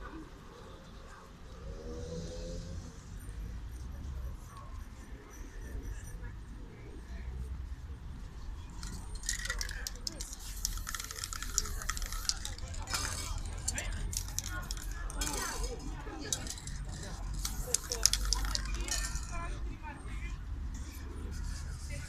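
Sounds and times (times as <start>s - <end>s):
cans rattling and clinking: 8.8s - 19.5s
spray can hissing: 9.3s - 13.3s, 17.3s - 18.9s
sharp clicks: 16.4s - 19.0s.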